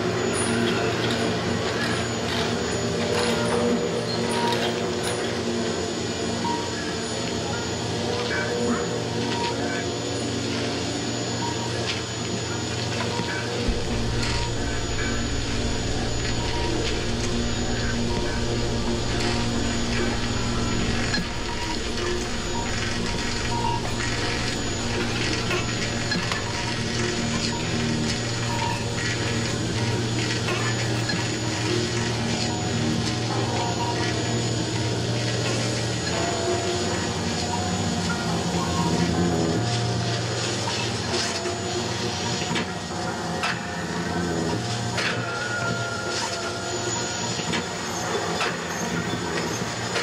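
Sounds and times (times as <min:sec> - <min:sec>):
electric motor hum: 0:13.6 - 0:33.2.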